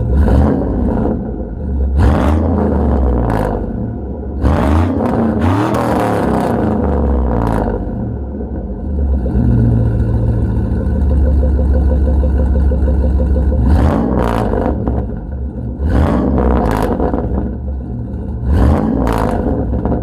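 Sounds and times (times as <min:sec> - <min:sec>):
truck engine idling and revving: 0:00.0 - 0:20.0.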